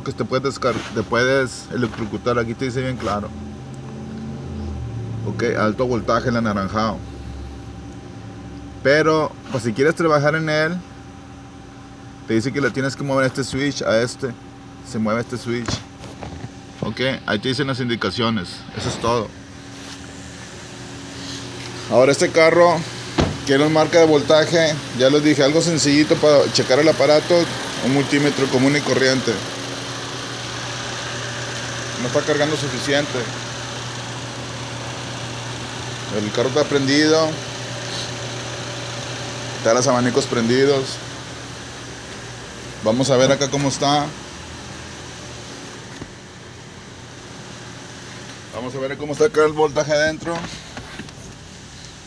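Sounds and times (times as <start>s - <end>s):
cooling fans hissing: 0.0s - 52.0s.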